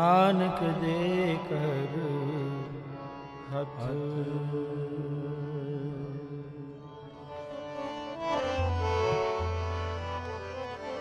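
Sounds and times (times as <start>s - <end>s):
person singing: 0.0s - 7.4s
harmonium sustained chord: 0.0s - 11.0s.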